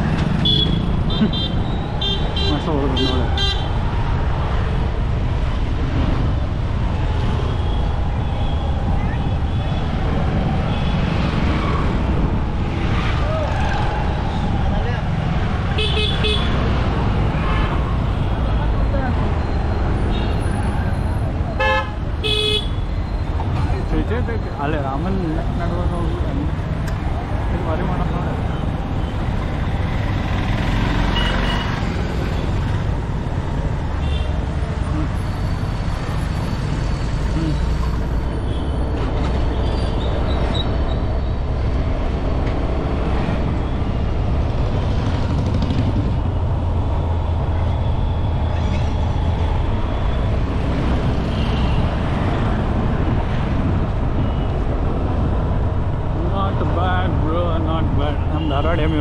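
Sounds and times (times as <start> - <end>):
engine and wind rumble: 0.0 - 59.0
passing motorbikes and scooters: 23.2 - 35.2, 39.1 - 47.6.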